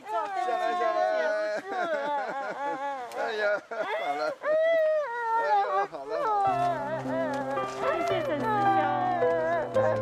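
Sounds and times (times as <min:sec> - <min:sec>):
woman crying in wails: 0:00.4 - 0:10.0
soft background music: 0:06.5 - 0:10.0.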